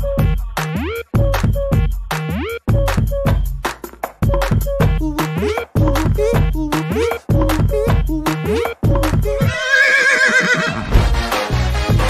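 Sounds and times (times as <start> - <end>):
dance music with steady beat: 0.0 - 9.5
horse whinnying: 9.4 - 10.9.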